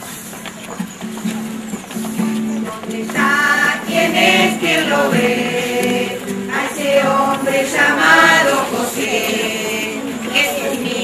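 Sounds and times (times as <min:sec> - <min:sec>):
group singing a hymn: 0:02.4 - 0:11.0.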